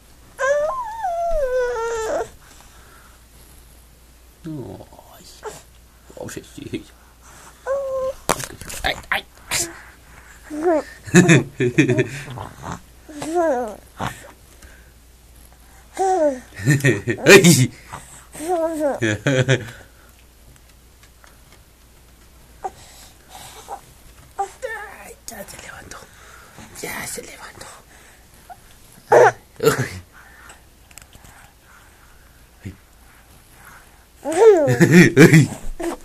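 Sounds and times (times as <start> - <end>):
baby vocalizing: 0.4 - 2.3, 8.9 - 11.0, 12.3 - 14.3, 16.0 - 16.5, 18.4 - 19.0, 28.5 - 29.4, 34.2 - 34.8
person whispering: 4.4 - 5.6, 24.6 - 27.9.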